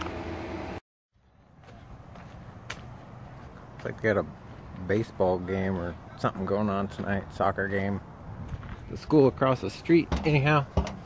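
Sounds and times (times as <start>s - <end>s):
faint outdoor ambience: 0.2s - 11.0s.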